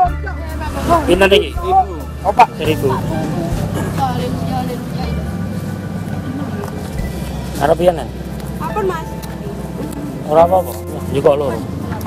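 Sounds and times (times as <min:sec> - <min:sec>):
steady low rumble: 0:00.4 - 0:12.0.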